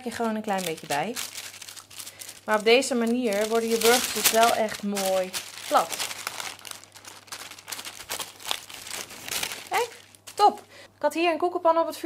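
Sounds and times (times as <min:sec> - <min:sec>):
baking paper crinkling: 0:00.0 - 0:10.7
sharp paper crackles: 0:00.0 - 0:10.7.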